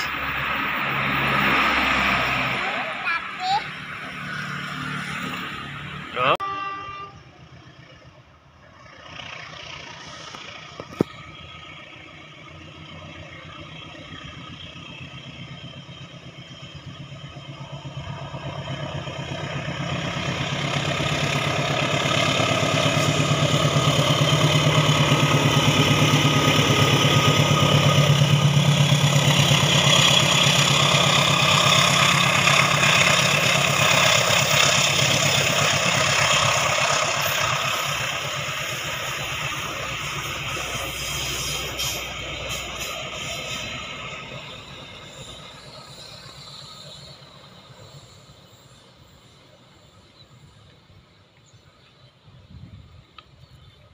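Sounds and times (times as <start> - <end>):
passenger carriages rolling: 0.0 - 6.4, 7.2 - 52.3
diesel locomotive passing: 0.0 - 53.9.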